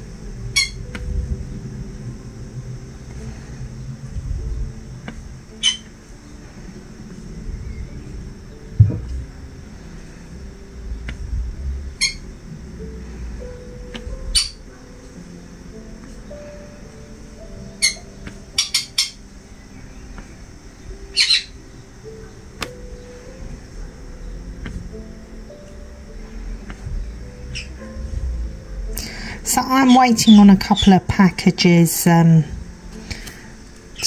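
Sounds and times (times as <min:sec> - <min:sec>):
quiet background music: 0:00.0 - 0:34.0
low thump: 0:08.7 - 0:09.2.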